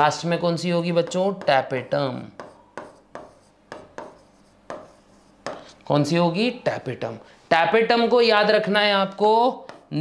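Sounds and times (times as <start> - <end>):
chalk tapping and scraping on blackboard: 0.7 - 5.8, 9.1 - 10.0.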